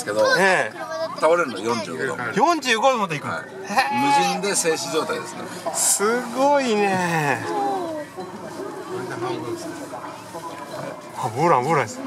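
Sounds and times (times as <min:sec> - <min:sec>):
faint background voices: 0:03.2 - 0:12.0.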